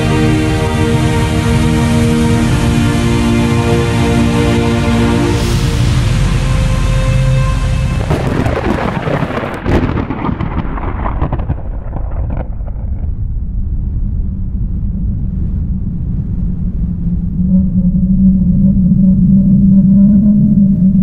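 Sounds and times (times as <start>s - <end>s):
heavy rain hissing: 0.0s - 10.6s
thunder crack: 5.2s - 17.0s
low rumble of thunder: 5.6s - 21.0s.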